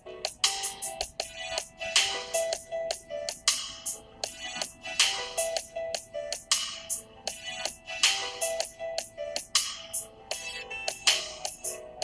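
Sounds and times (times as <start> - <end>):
hip-hop instrumental beat: 0.0 - 12.0.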